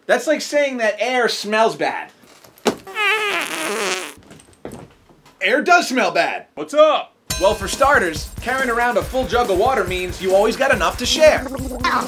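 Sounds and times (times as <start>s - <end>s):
fart with wavering pitch: 2.9s - 4.2s, 11.1s - 12.0s.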